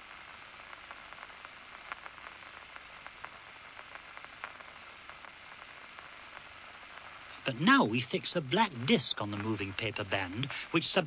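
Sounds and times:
faint irregular clicks: 0.0 - 11.0
steady hiss: 0.0 - 11.0.

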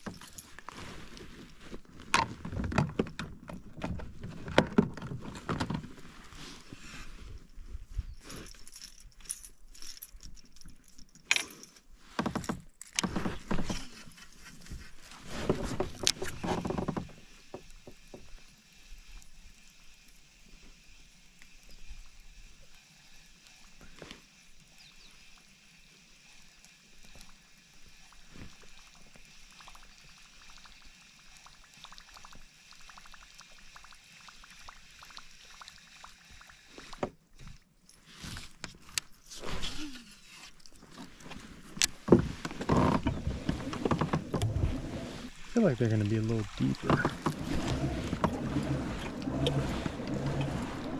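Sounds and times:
rustling and knocks on kayak: 0.0 - 6.2, 12.1 - 18.4, 40.8 - 50.9.

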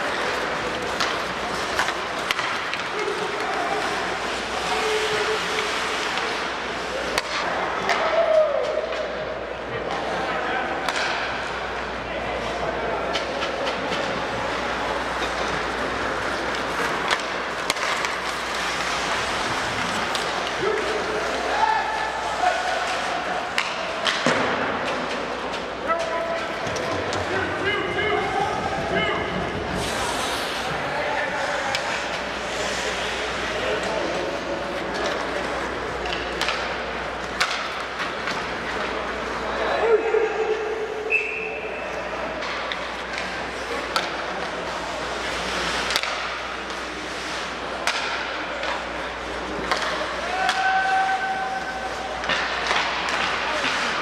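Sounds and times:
hockey sticks and puck knocks: 0.0 - 9.2, 10.8 - 11.8, 12.4 - 28.2, 31.5 - 39.4, 42.2 - 54.0
crowd murmur: 0.0 - 50.4.

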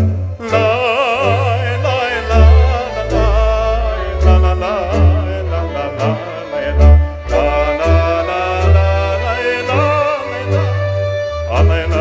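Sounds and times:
accordion: 0.0 - 12.0
deep bass notes pulsing: 0.0 - 12.0
man singing with vibrato: 0.0 - 12.0
violins: 0.0 - 12.0.

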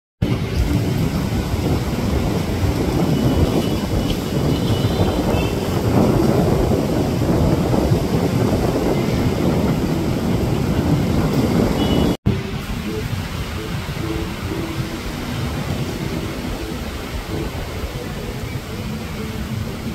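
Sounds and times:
surf washing on beach: 0.2 - 19.9
wind rumbling on microphone: 0.2 - 19.9.

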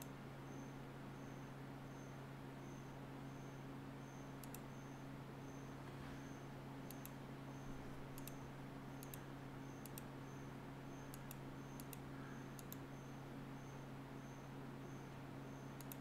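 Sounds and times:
steady low hum: 0.0 - 16.0
computer mouse clicks: 4.4 - 4.7, 6.9 - 7.2, 8.2 - 8.4, 9.0 - 9.2, 9.8 - 10.1, 11.0 - 12.8, 15.8 - 16.0.

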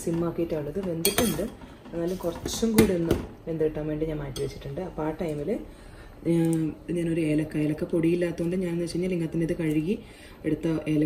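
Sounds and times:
metallic kitchenware clink: 1.0 - 1.5.

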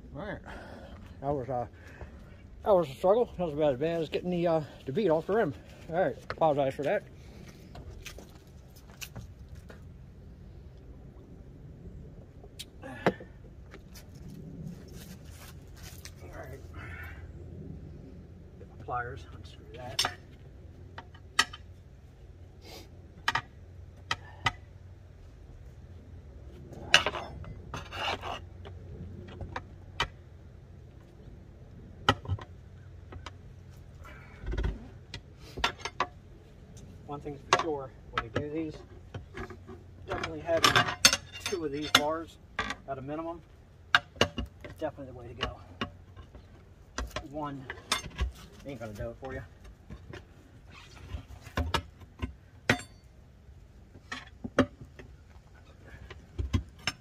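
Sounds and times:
tire irons clinking on steel rim: 18.8 - 21.9, 26.6 - 30.4, 32.0 - 57.0.

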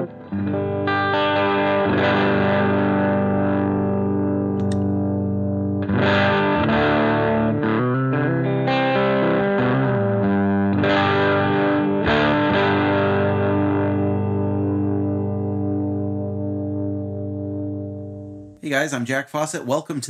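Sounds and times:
electric guitar strummed chords: 0.0 - 18.6.

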